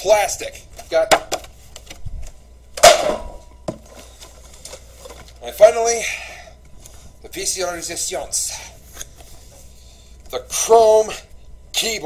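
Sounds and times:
plastic packaging handled: 3.7 - 5.4.

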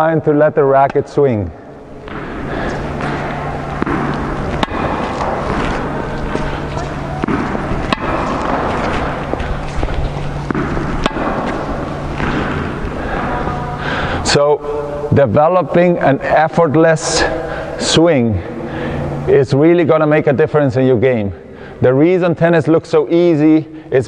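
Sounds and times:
low hum: 0.0 - 24.0
sharp knocks: 2.0 - 13.4.

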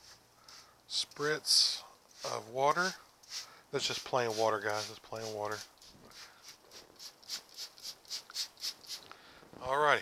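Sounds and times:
spray bottle hissing squirts: 3.2 - 9.1.

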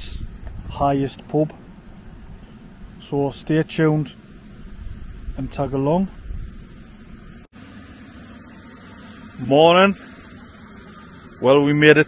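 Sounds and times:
wind on microphone: 0.0 - 3.0, 4.1 - 7.5.

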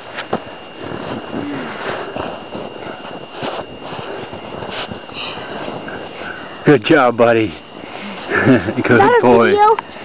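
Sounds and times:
snow crunching: 0.2 - 6.4
snowsuit rustling: 0.7 - 6.6.

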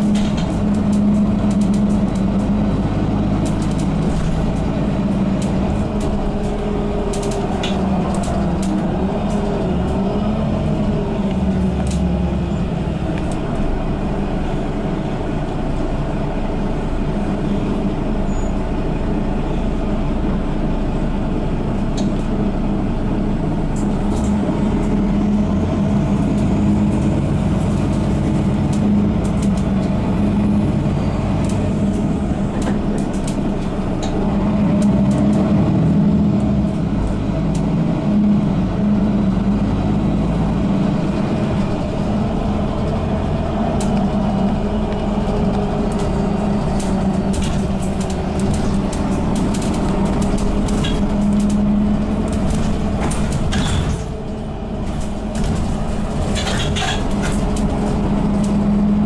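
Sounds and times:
bus engine drone: 0.0 - 59.0
road noise: 0.0 - 59.0.

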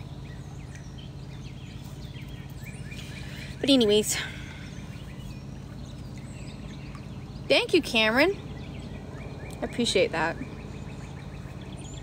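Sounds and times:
bird chirps: 0.0 - 12.0
low hum: 0.0 - 12.0.

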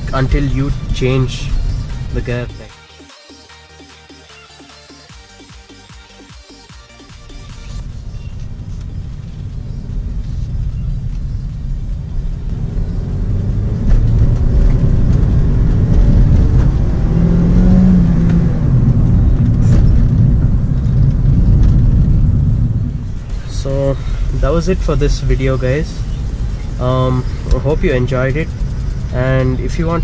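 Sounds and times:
car engine accelerating: 0.0 - 2.8, 3.8 - 30.0
road noise: 0.0 - 30.0.

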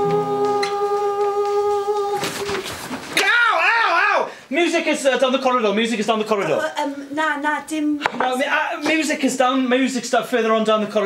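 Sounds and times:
woman humming long notes: 0.0 - 2.4.

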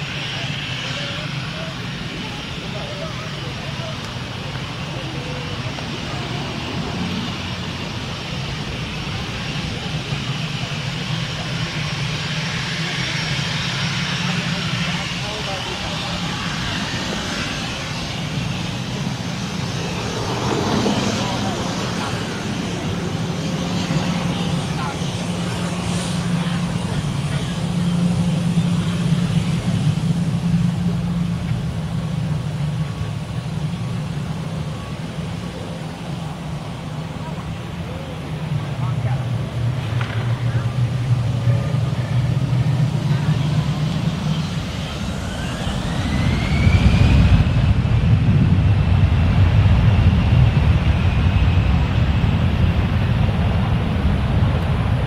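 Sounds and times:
jet engines droning: 0.0 - 55.0.

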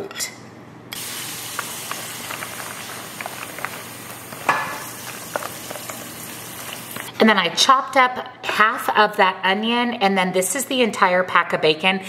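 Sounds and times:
wet mixing noise: 1.0 - 7.2.

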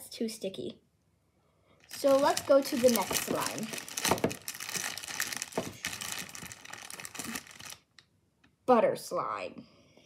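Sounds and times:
crinkling and rustling by hand: 1.8 - 8.0.

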